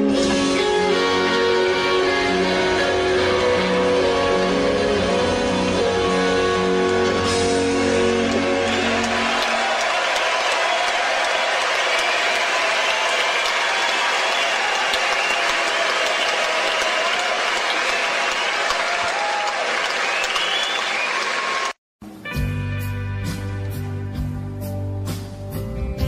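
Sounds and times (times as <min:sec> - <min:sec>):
audience applause: 0:02.7 - 0:21.8.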